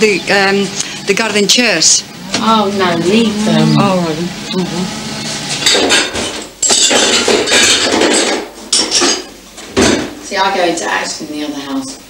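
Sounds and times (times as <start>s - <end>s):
dishes and cutlery clattering: 5.6s - 10.1s.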